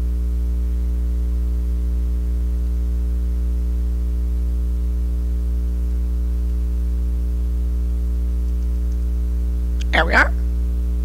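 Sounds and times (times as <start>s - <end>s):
mains hum: 0.0s - 11.0s.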